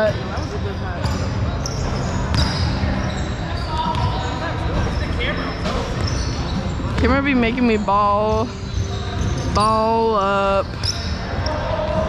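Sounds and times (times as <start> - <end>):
faint players' voices: 0.0 - 12.0.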